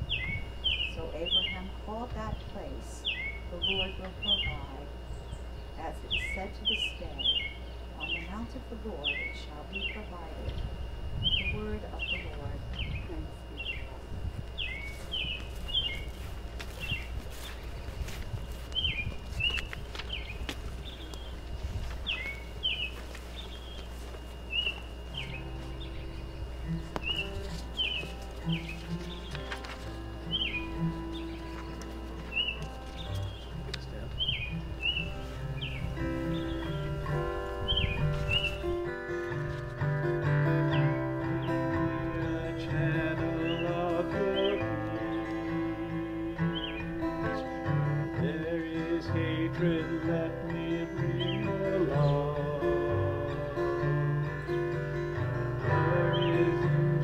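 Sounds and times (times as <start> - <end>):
guitar playing held chords: 0.0 - 57.0
low outdoor rumble: 0.0 - 57.0
songbird chirping: 0.0 - 57.0.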